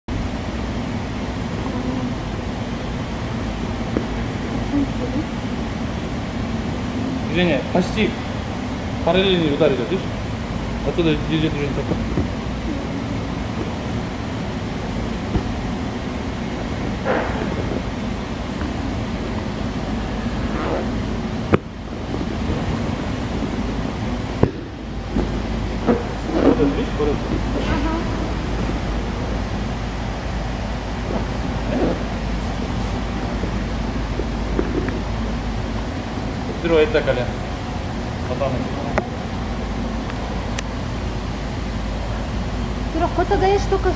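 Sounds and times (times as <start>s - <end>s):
gym hall background noise: 0.1s - 43.9s.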